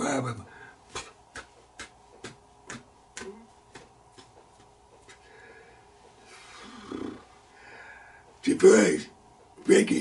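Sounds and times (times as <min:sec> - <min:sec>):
hands tapping together: 0:00.9 - 0:05.3.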